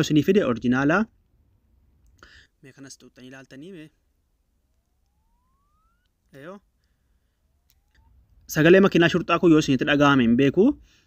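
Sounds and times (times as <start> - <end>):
faint tone gliding upward: 4.7 - 6.6.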